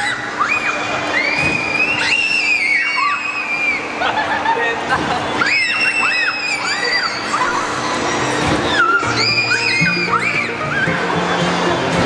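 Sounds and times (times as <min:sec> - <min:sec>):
children screaming and squealing: 0:00.0 - 0:11.2.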